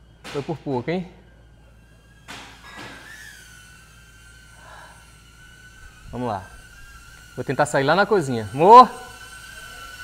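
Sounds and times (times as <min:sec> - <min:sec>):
drone propellers whining: 0:01.1 - 0:10.0.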